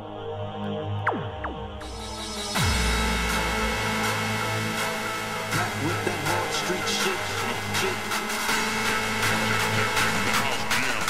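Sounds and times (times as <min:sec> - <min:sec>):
hard dance music: 0:01.0 - 0:11.0.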